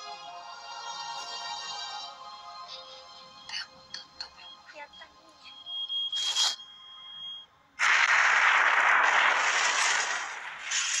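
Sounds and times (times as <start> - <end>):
high timer beep: 5.5 - 7.5
loud explosion: 7.8 - 11.0.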